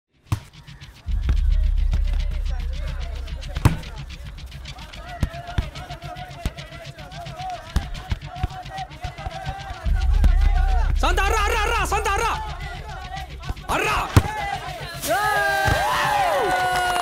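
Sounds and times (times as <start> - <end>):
sharp thumps: 0.2 - 15.1
low bass drone: 1.0 - 8.4, 9.7 - 16.5.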